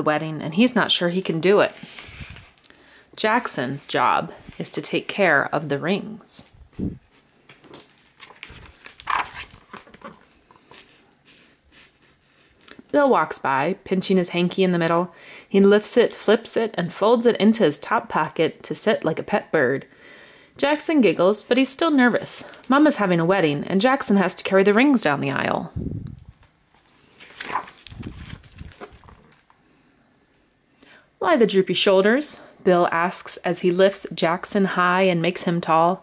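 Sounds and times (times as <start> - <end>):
paper page rustling: 1.7 - 2.6, 7.0 - 12.7, 26.7 - 29.6.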